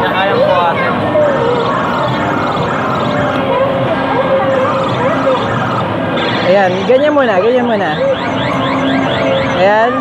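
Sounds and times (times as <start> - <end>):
steady machine tones: 1.0 - 10.0
arcade game rising chirps: 1.3 - 10.0.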